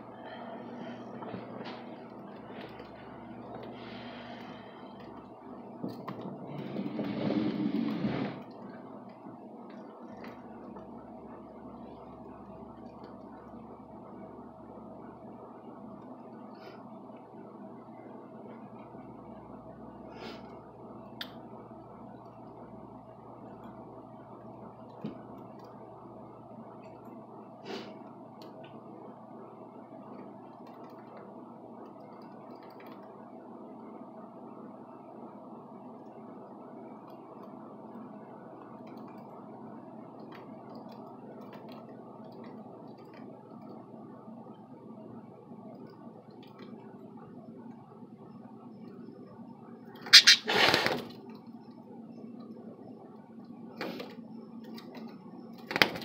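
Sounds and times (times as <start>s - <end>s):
steady low hum: 0.0s - 56.0s
noisy rustle: 6.3s - 8.7s.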